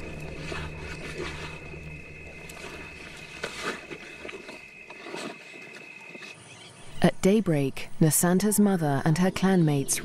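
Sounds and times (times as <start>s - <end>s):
steady low hum: 0.0s - 4.8s.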